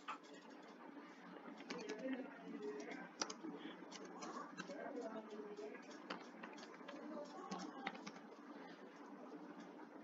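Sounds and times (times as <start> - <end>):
faint keyboard typing: 1.4 - 9.8.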